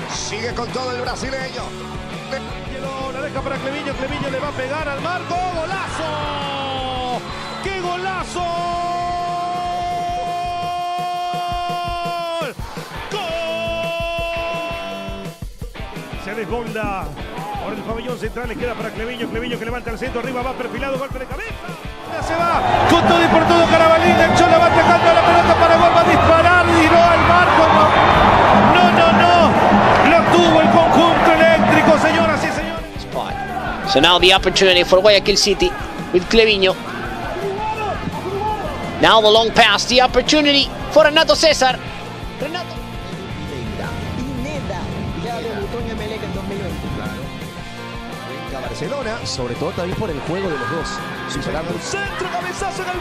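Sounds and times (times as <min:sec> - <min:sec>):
music with steady beat: 0:00.0 - 0:53.0
excited commentator voice: 0:02.4 - 0:15.2, 0:16.3 - 0:41.8, 0:48.7 - 0:53.0
crowd noise: 0:03.4 - 0:10.2, 0:21.7 - 0:53.0.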